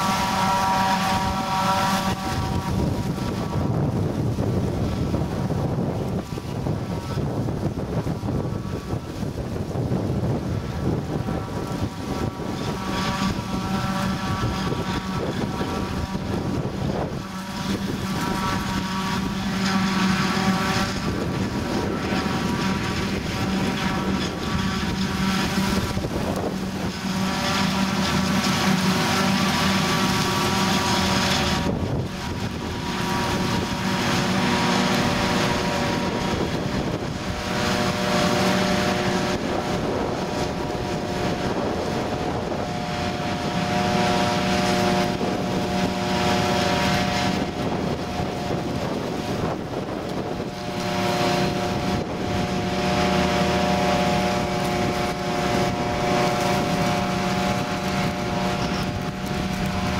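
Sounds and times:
tractor engine droning: 0:00.0 - 0:59.9
forage harvester chopping maize: 0:17.0 - 0:36.8.

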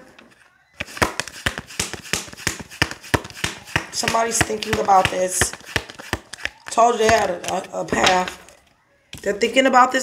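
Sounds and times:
cards being shuffled: 0:00.3 - 0:08.6.

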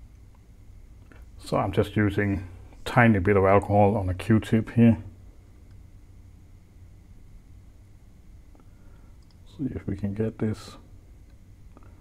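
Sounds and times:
low steady hum: 0:00.0 - 0:12.0
faint ticks: 0:08.5 - 0:09.5.

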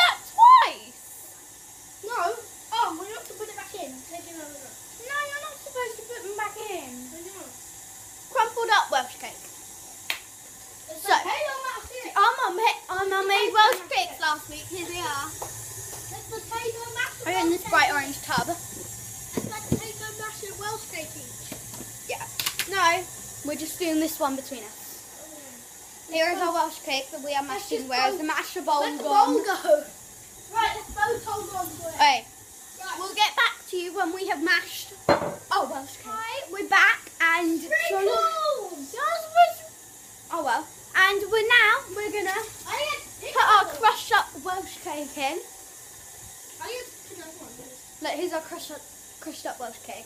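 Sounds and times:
children talking: 0:00.0 - 0:01.3, 0:02.0 - 0:09.5, 0:10.8 - 0:50.0
girl speaking: 0:00.0 - 0:01.3, 0:02.0 - 0:07.6, 0:08.3 - 0:09.4, 0:10.9 - 0:15.4, 0:16.1 - 0:18.7, 0:19.4 - 0:21.4, 0:22.1 - 0:45.5, 0:46.6 - 0:50.0.

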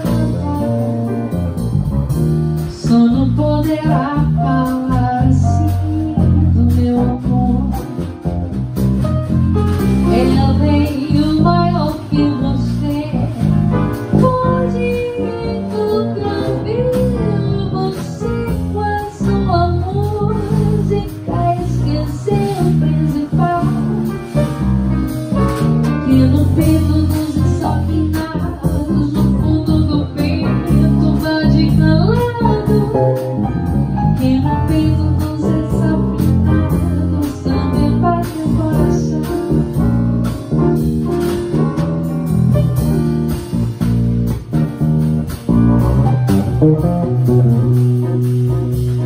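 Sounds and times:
jazz piano bass and drums: 0:00.0 - 0:49.0
woman singing: 0:02.7 - 0:08.0, 0:10.1 - 0:24.2, 0:26.0 - 0:33.3, 0:34.2 - 0:39.8.

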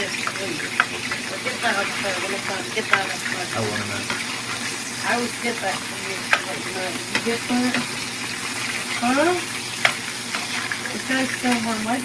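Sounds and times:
burgers sizzling in a pan: 0:00.0 - 0:12.0.

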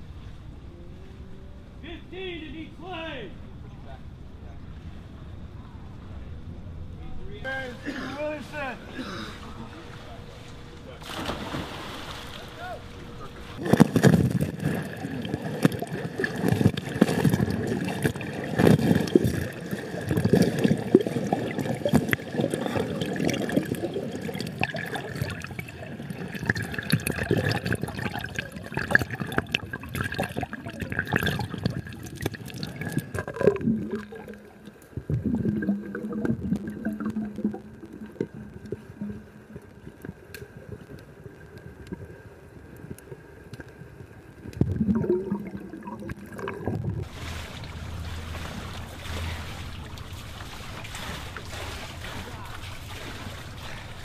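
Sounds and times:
pool water splashing: 0:07.5 - 0:54.0
underwater bubbling and gurgling: 0:13.5 - 0:54.0.

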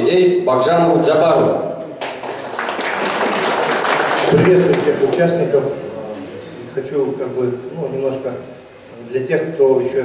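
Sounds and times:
audience applauding: 0:02.0 - 0:05.4.

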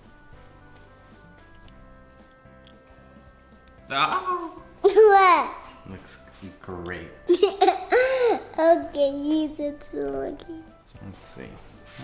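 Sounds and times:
girl giggling: 0:07.3 - 0:08.5.

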